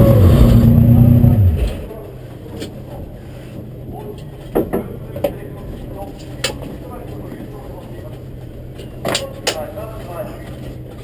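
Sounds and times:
race car engine idling: 0:00.0 - 0:02.0.

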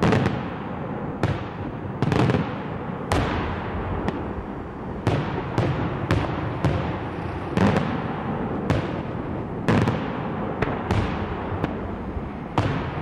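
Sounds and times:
firework shells bursting with bangs: 0:00.0 - 0:13.0
rumble of bursts and echoes: 0:00.0 - 0:13.0.

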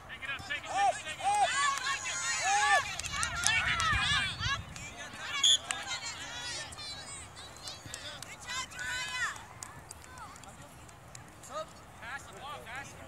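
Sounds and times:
players shouting and calling: 0:00.0 - 0:10.7.

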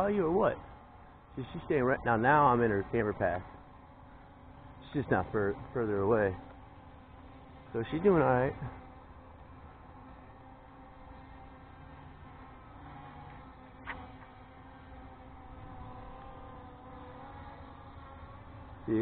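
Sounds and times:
drone motors buzzing: 0:00.0 - 0:19.0.

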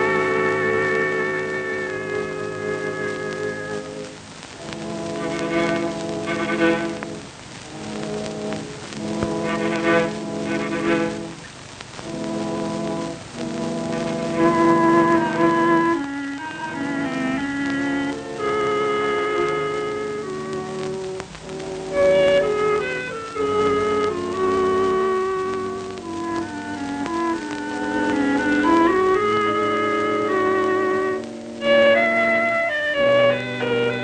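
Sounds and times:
orchestral brass chords: 0:00.0 - 0:11.4, 0:12.0 - 0:34.0.

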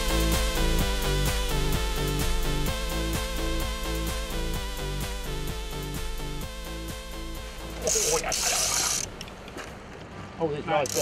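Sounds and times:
electronic background music: 0:00.0 - 0:09.2.

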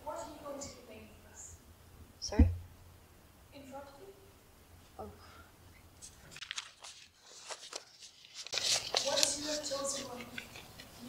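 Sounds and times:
paper pages rustling: 0:06.0 - 0:11.0.

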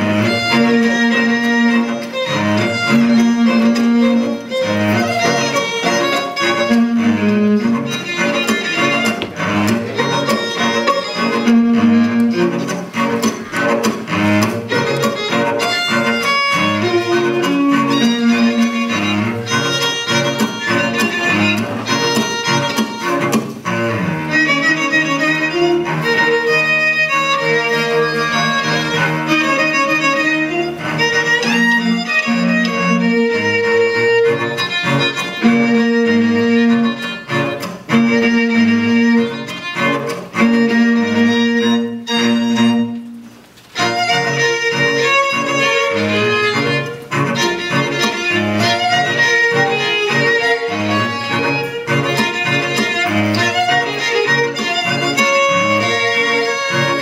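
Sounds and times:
string quartet playing: 0:00.0 - 0:57.0.

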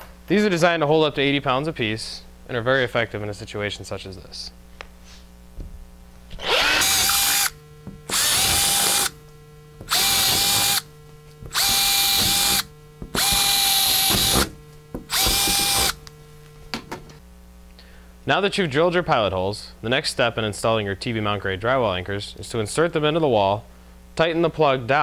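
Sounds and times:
cordless drill boring into drywall: 0:06.4 - 0:09.2, 0:09.9 - 0:10.9, 0:11.5 - 0:16.0.

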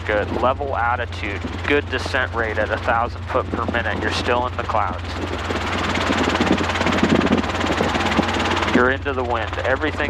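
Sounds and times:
helicopter rotor and engine drone: 0:00.0 - 0:10.0.

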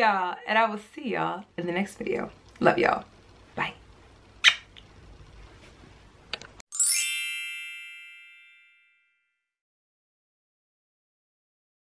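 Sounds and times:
lip-smack kiss: 0:04.4 - 0:04.9
bright chime sound effect: 0:06.7 - 0:09.4.

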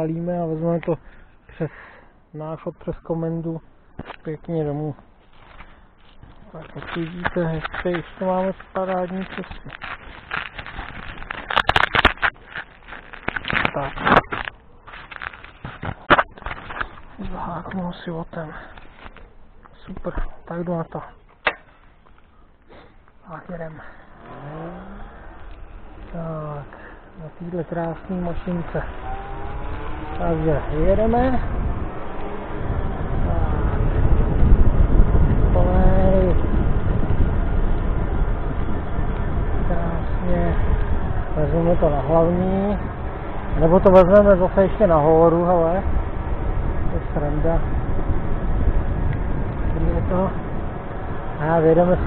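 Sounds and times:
electric scooter road noise: 0:02.9 - 0:52.0
wind on microphone: 0:06.2 - 0:17.8, 0:24.2 - 0:52.0
fingers handling camera: 0:06.8 - 0:17.2.

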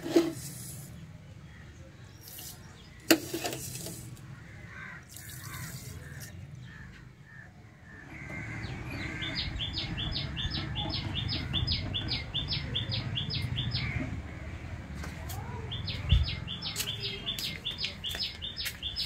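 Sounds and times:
bird chirping: 0:05.1 - 0:14.0, 0:15.4 - 0:19.0.

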